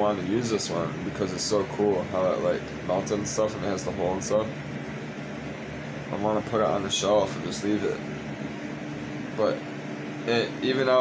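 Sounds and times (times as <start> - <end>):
fan humming: 0.0 - 11.0.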